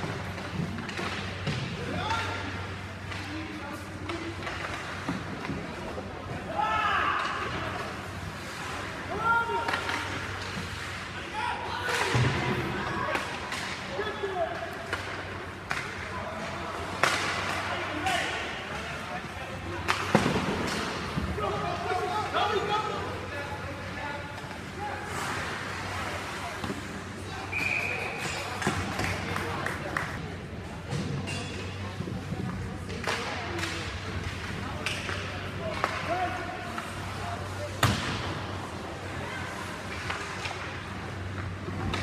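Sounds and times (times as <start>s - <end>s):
puck and sticks knocking boards: 16.9s - 18.8s, 19.7s - 21.6s.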